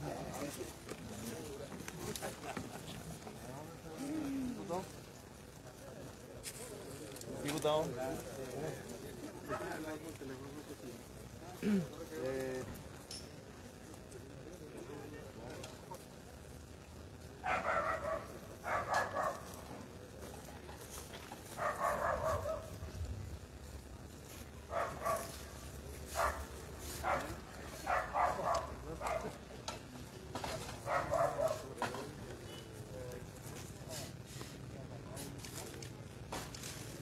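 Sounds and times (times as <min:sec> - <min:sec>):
animal barking: 0:17.4 - 0:19.5, 0:21.6 - 0:22.8, 0:24.7 - 0:25.4, 0:26.2 - 0:29.4, 0:30.8 - 0:31.7.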